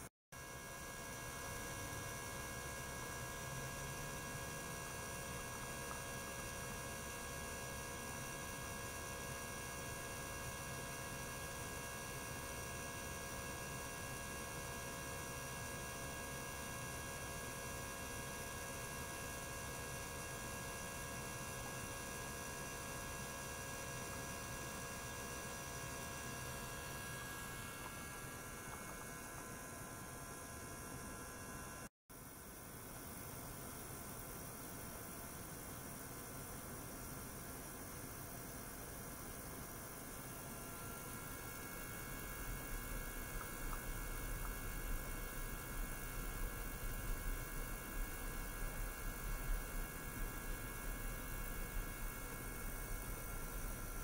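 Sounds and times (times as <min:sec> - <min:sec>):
ultrasonic equipment humming: 0:00.0 - 0:54.0.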